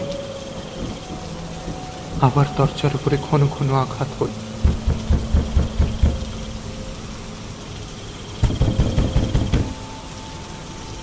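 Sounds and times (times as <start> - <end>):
crickets chirping: 0.0 - 11.0
pounding on a door: 4.6 - 6.2, 8.4 - 9.8.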